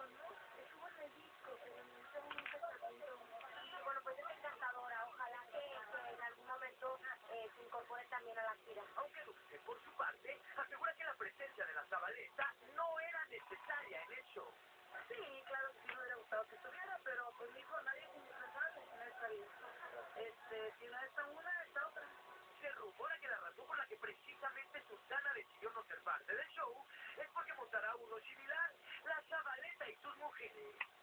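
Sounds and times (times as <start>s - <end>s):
woman talking through television: 0.0s - 31.0s.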